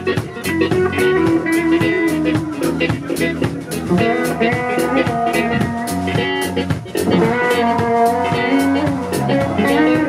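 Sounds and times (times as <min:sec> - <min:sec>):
drum kit steady beat: 0:00.0 - 0:10.0
electric guitar: 0:00.0 - 0:10.0.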